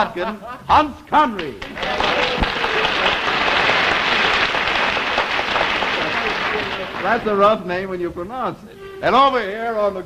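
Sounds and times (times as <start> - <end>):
audience applauding: 1.4 - 7.7.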